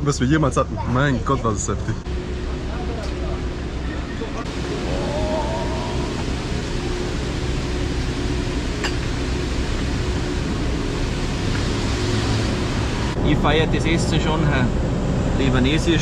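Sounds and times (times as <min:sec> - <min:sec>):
faint steady hum: 0:00.0 - 0:16.0
traffic hiss and rumble: 0:00.0 - 0:16.0.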